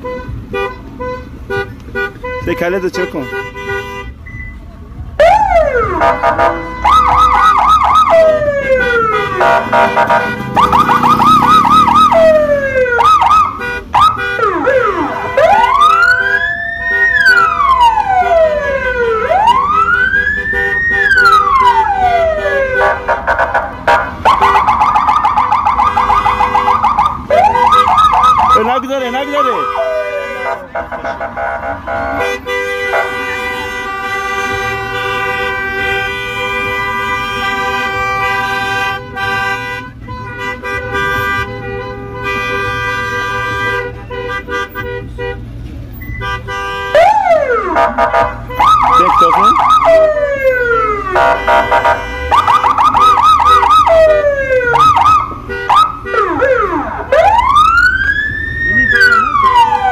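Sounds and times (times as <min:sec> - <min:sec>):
electronic sirens yelping and wailing: 0:05.2 - 0:31.8, 0:47.0 - 0:59.9.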